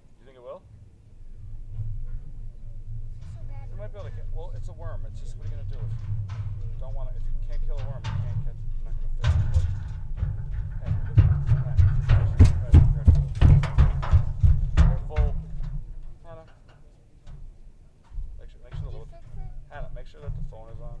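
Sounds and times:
low rumble: 0.7 - 16.4
footsteps on wooden boards: 8.2 - 16.2.

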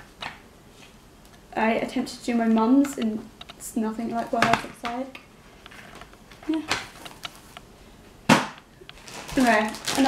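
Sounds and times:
book slapping on wooden table: 8.3 - 8.6.

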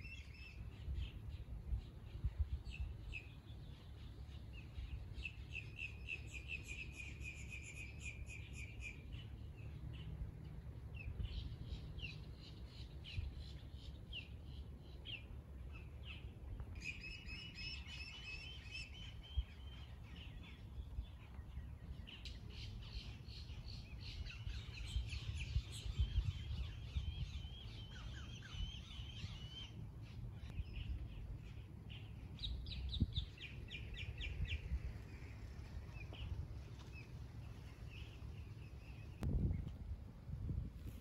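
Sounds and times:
low steady rumble: 0.0 - 41.0.

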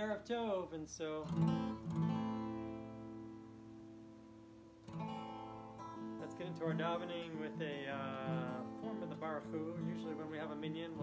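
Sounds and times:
acoustic guitar chord strummed: 0.0 - 11.0.

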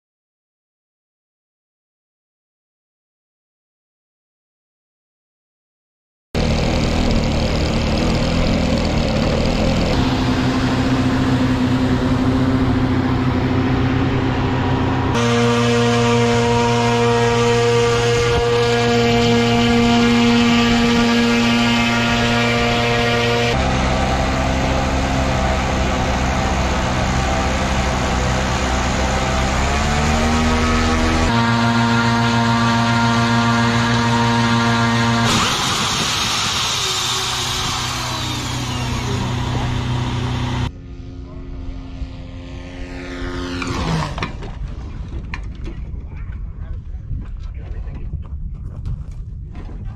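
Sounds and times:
drone propeller engine running: 6.4 - 46.8
catapult launch rush: 35.2 - 39.4.

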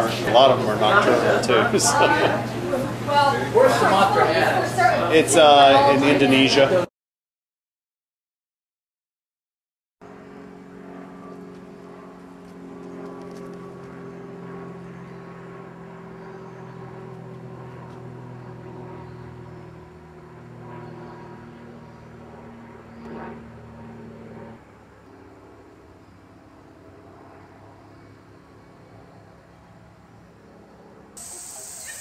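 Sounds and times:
faint background hum: 0.0 - 6.9
motor humming: 31.2 - 32.0.

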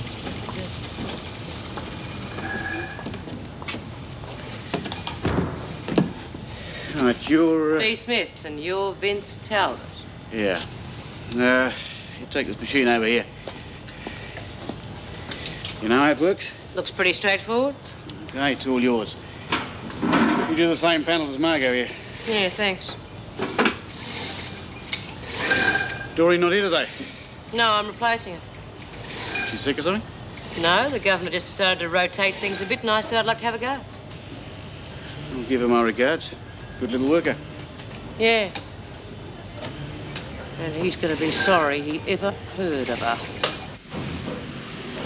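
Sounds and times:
steady background noise: 0.0 - 45.0
sewing machines rattling: 23.8 - 26.0, 28.9 - 29.8.

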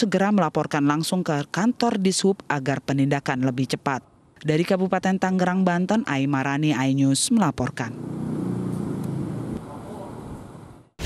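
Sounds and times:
noisy street background: 7.1 - 11.0.

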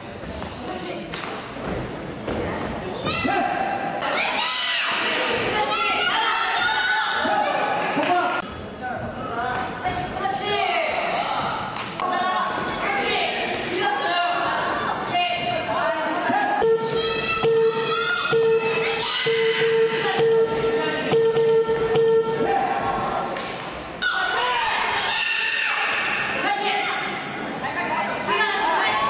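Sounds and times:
voices shouting in a hall: 3.0 - 8.4, 9.2 - 20.2, 22.2 - 29.0
repeated held note: 16.6 - 22.6.

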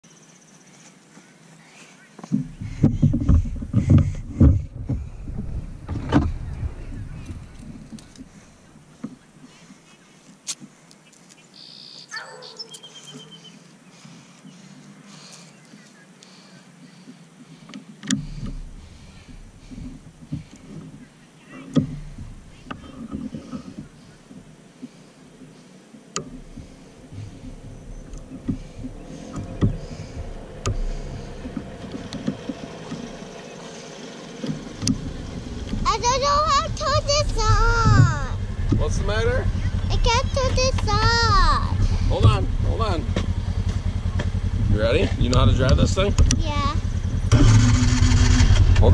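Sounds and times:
utility vehicle engine approaching: 2.3 - 9.6, 18.0 - 48.9
low wind rumble on microphone: 2.4 - 9.4, 18.2 - 24.7, 26.1 - 33.6, 34.4 - 48.9
scattered knocks: 26.2 - 33.4.

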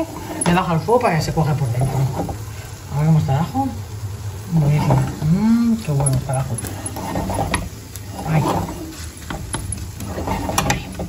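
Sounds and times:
spatula scraping frying pan: 0.0 - 2.9, 4.4 - 11.0.

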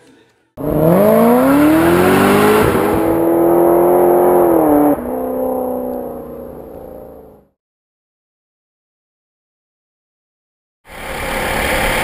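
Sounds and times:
race car engine revving: 0.6 - 7.5.

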